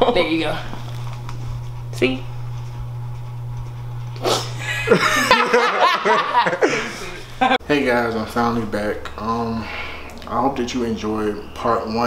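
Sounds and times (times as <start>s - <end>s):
people laughing: 4.6s - 7.6s.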